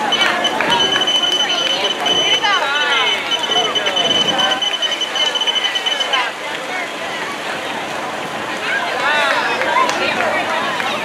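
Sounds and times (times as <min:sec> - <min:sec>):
high electronic beep tone: 0:00.0 - 0:06.3.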